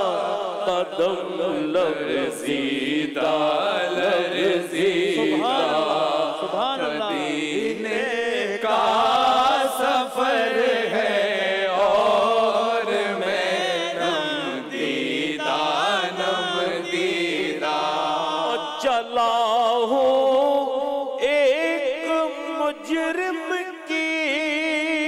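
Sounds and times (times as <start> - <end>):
men's voices droning: 0.0 - 9.6
elderly man singing solo: 5.1 - 7.5.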